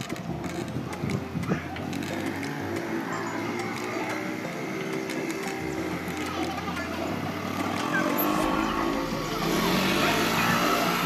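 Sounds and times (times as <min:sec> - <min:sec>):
motor scooter running: 0:00.0 - 0:11.0
road traffic: 0:00.0 - 0:11.0.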